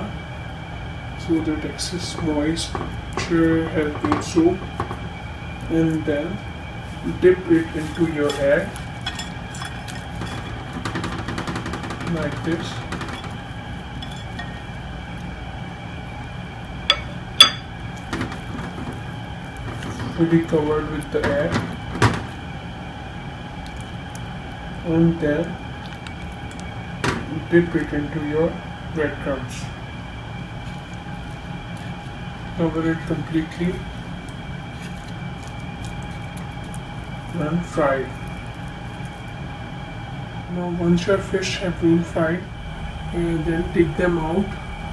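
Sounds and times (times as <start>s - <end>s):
background hum: 0.0s - 44.9s
clinks against ceramic bowl: 16.9s - 17.7s
soft crackles of breadcrumbs: 23.4s - 24.8s, 25.4s - 27.0s, 30.2s - 39.7s
fish turned in wet egg: 33.8s - 39.6s.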